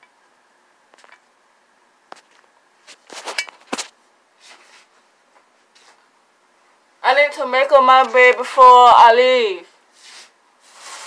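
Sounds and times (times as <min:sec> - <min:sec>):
scraping rustles: 0:02.2 - 0:06.1, 0:10.0 - 0:11.0.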